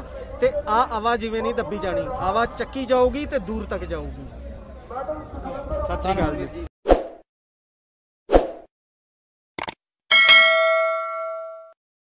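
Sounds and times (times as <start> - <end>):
bell chime: 10.1 - 11.8.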